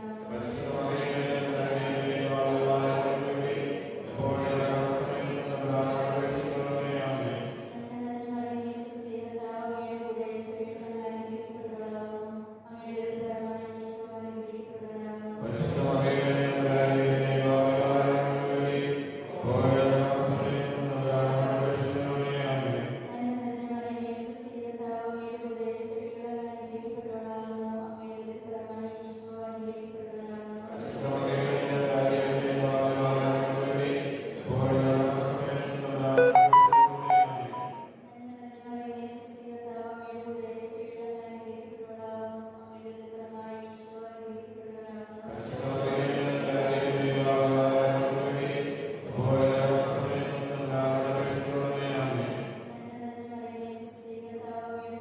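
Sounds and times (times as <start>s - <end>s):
chant-like sacred vocal music: 0.2s - 7.2s.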